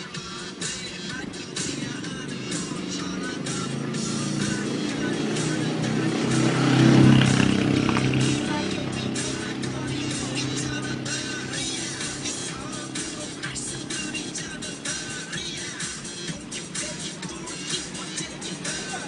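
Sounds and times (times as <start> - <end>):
pop dance music: 0.0 - 19.0
vehicle engine passing: 0.1 - 19.0.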